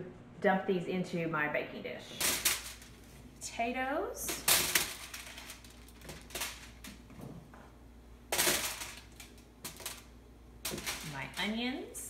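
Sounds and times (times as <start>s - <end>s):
potatoes dropping into pan: 2.2s - 3.1s, 4.2s - 7.7s, 8.3s - 11.6s
foil rustling: 2.2s - 3.3s, 4.3s - 7.2s, 8.3s - 11.6s.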